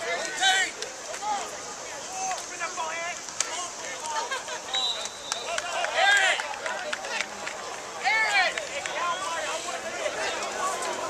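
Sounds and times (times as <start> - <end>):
people yelling: 0.0 - 7.3, 7.9 - 11.0
crowd chatter: 0.0 - 11.0.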